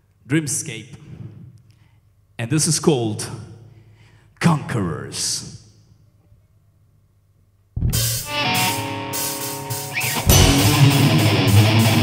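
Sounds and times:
live metal band playing: 7.9s - 12.0s.

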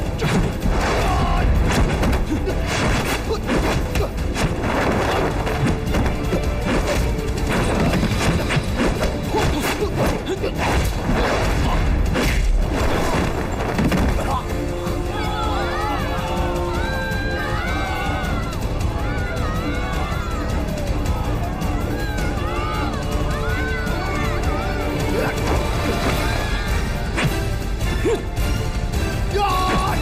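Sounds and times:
background music: 0.0s - 30.0s.

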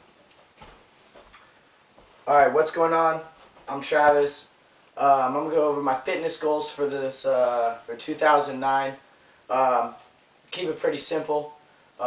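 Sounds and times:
soft footsteps: 0.0s - 4.1s.

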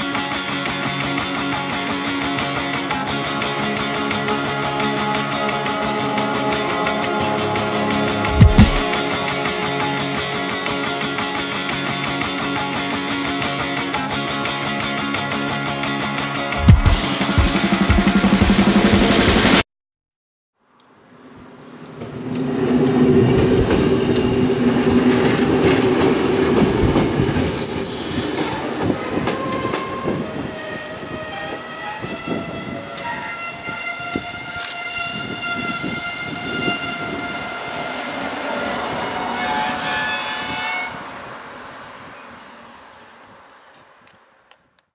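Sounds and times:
train rolling past: 0.0s - 15.8s, 21.2s - 44.1s
train horn: 4.0s - 8.2s, 29.1s - 41.3s
wheels squealing on tracks: 21.6s - 43.0s
rail joints clicking: 28.4s - 36.1s.

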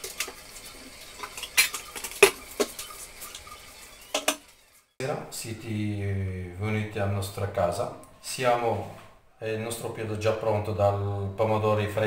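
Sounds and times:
spatula scraping frying pan: 0.0s - 4.9s.

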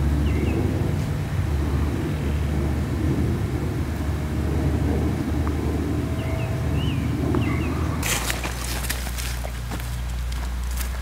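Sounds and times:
steady low rumble: 0.0s - 11.0s
bird chirp: 0.2s - 0.6s, 6.0s - 8.1s.

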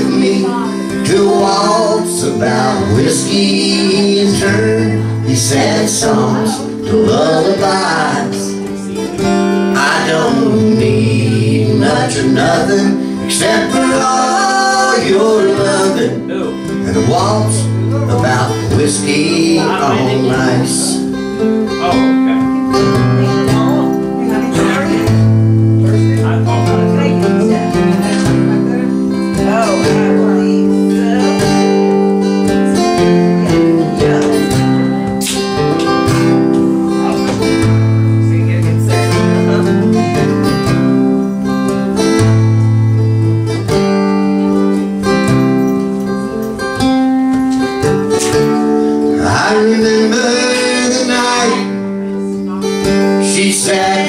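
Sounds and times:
acoustic guitar strumming waltz: 0.0s - 54.0s.

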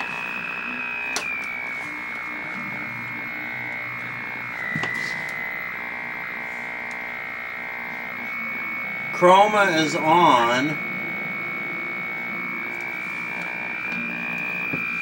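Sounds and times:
buzzy electronic test tone: 0.0s - 15.0s.

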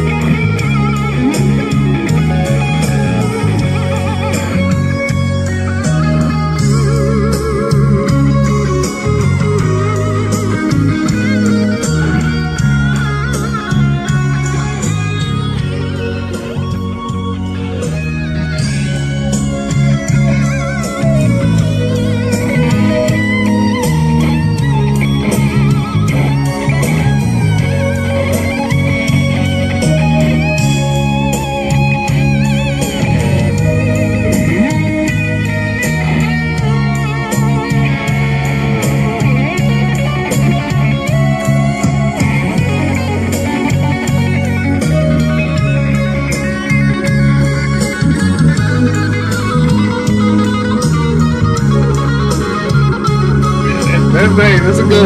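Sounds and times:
electric guitar lead line: 0.0s - 55.0s
low bass notes: 0.0s - 55.0s.

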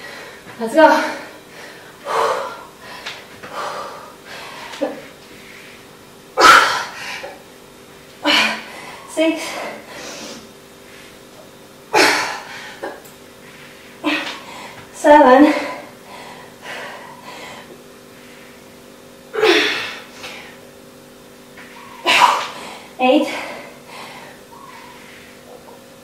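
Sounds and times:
woman exhaling and grunting: 8.2s - 10.4s, 14.0s - 17.7s, 19.3s - 20.6s, 22.0s - 25.3s.

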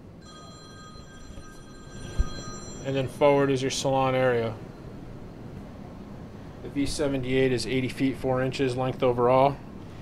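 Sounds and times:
high-pitched ringing tone: 0.0s - 5.3s.

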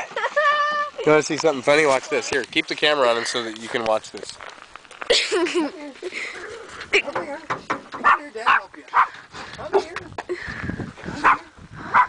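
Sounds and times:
dog barking: 8.0s - 9.2s, 11.2s - 12.0s.

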